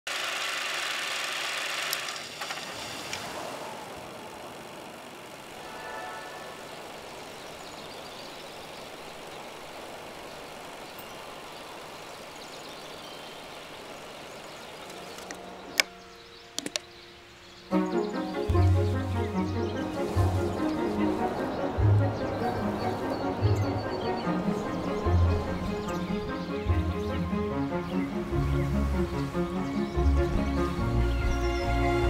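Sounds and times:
steady whirring noise: 0:00.1 - 0:31.9.

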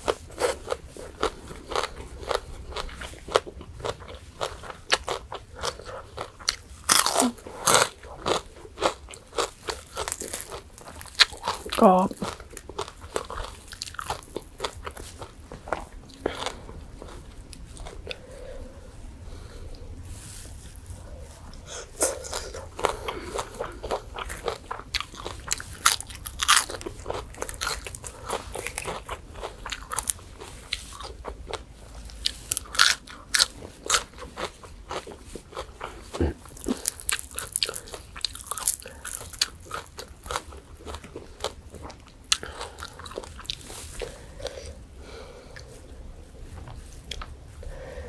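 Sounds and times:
crunching and chewing: 0:00.0 - 0:47.7.

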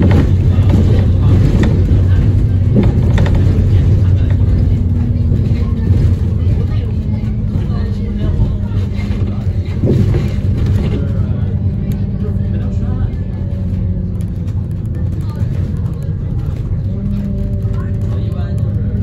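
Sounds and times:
bus engine humming: 0:00.0 - 0:19.0.

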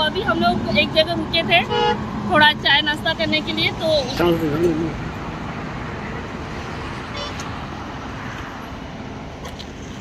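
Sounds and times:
road traffic noise: 0:00.0 - 0:10.0.

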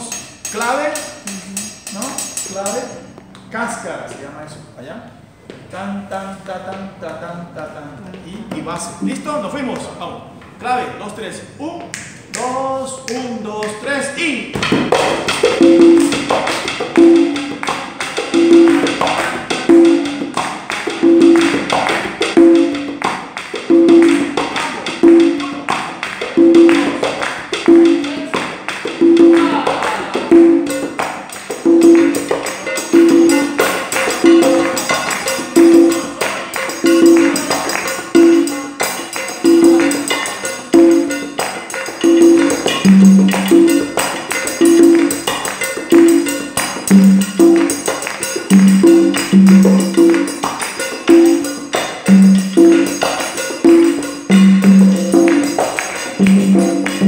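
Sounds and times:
conga open tones: 0:00.0 - 0:57.0.

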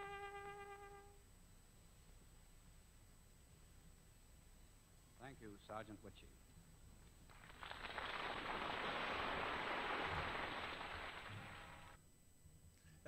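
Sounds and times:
studio audience applause: 0:07.4 - 0:11.9.

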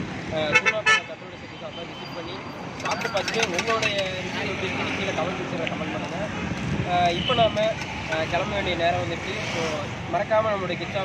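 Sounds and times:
street background noise: 0:00.0 - 0:11.0.

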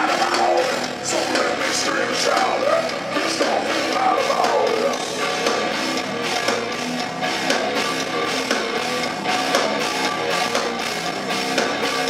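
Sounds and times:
distorted electric guitars: 0:00.0 - 0:12.0
drum kit with cymbals: 0:00.0 - 0:12.0
live heavy rock band: 0:00.0 - 0:12.0.

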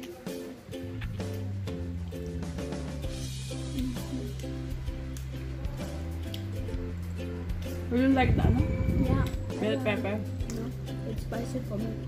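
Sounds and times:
background music with bass notes: 0:00.0 - 0:12.0.

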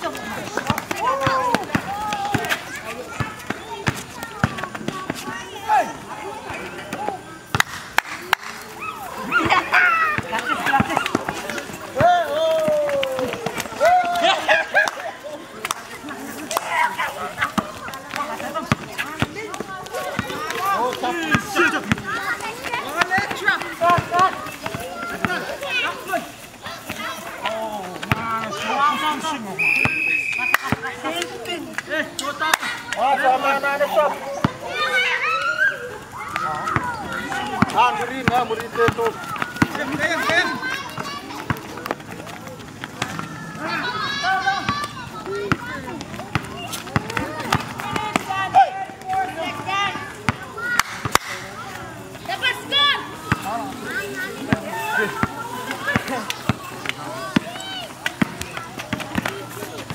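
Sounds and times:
people calling and shouting: 0:00.0 - 0:59.9
players' voices: 0:00.0 - 0:59.9
running feet on concrete: 0:00.0 - 0:59.9.

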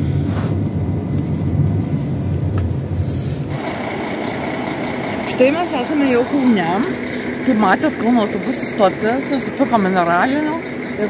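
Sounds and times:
bus engine and road rumble: 0:00.0 - 0:11.0
outdoor traffic noise: 0:00.0 - 0:11.0
steady high whine: 0:00.0 - 0:11.0.

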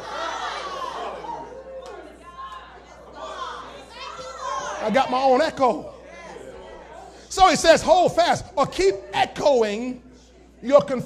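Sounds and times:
preacher's loud voice: 0:07.3 - 0:10.0.

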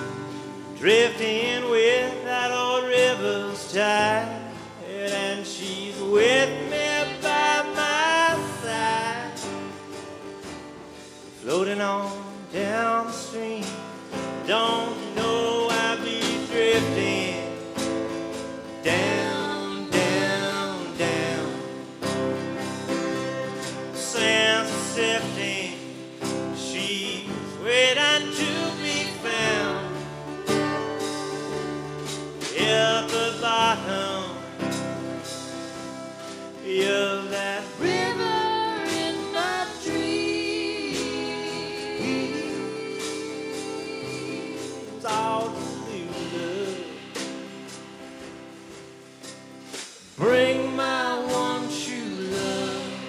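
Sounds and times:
strummed acoustic guitar: 0:00.0 - 0:53.0
flute melody: 0:28.0 - 0:46.9.

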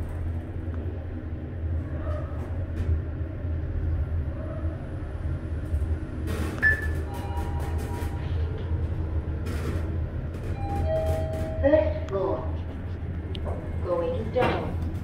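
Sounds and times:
elevator rumble and hum: 0:00.0 - 0:15.0.

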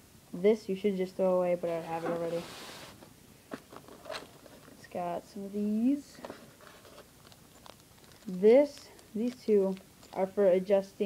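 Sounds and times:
rustling: 0:01.6 - 0:05.2, 0:06.0 - 0:10.5.

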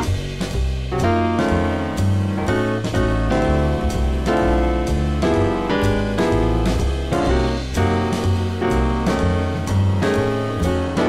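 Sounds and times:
piano chords: 0:00.0 - 0:11.0
walking bass: 0:00.0 - 0:11.0.

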